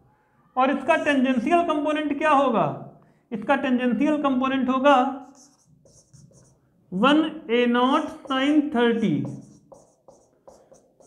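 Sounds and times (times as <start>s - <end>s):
marker writing on whiteboard: 5.0s - 11.0s.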